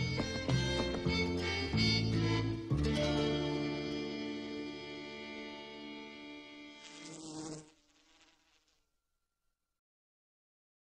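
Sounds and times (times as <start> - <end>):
fly buzzing: 6.0 - 8.8.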